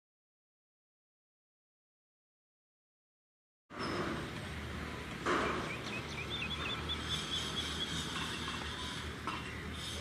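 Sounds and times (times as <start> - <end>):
small birds chirping: 5.4 - 10.0.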